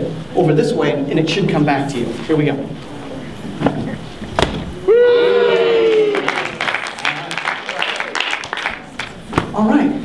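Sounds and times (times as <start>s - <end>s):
beach ball slap: 4.4s - 4.8s
audience ooh: 4.7s - 8.9s
scattered clapping: 6.1s - 9.5s.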